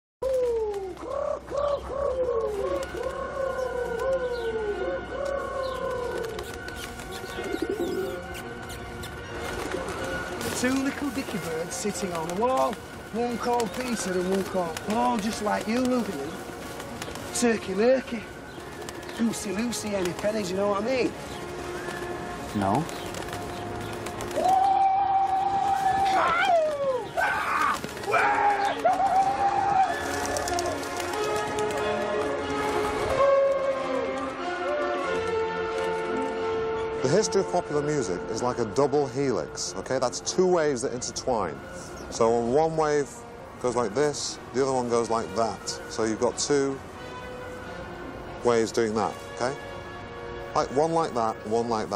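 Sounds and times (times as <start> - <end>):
pigeons cooing: 0.2 - 35.1.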